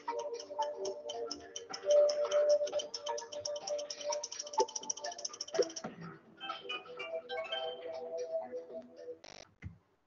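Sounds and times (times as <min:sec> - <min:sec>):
fast rattling tick: 0:00.0 - 0:05.8.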